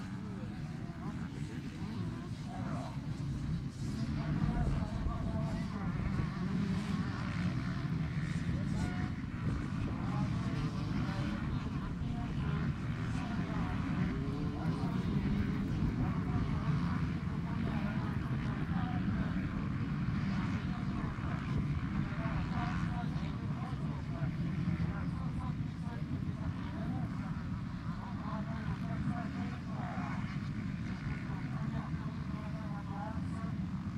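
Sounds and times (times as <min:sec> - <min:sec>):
motorcycle engines racing: 0:00.0 - 0:33.9.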